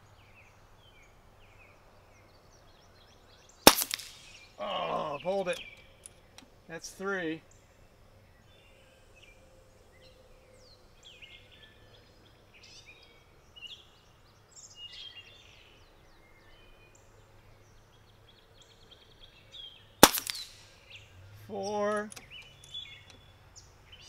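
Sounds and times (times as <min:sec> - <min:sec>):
small birds chirping: 0:00.0 - 0:24.0
air pistol shot: 0:03.7 - 0:04.4, 0:20.0 - 0:20.8.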